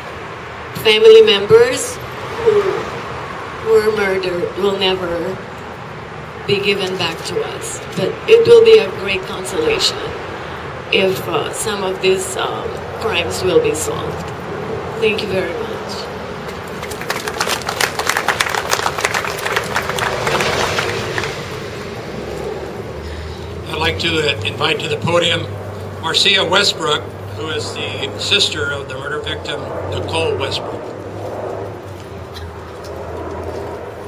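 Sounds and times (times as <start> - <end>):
vehicle engine rumbling: 0.0 - 34.0
crowd applauding: 16.7 - 21.6.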